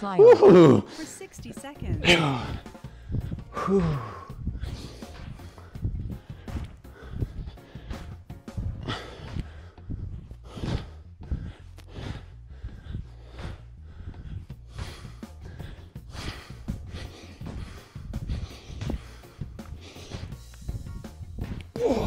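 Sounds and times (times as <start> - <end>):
background music: 0.0 - 22.0
man breathing heavily: 2.0 - 22.0.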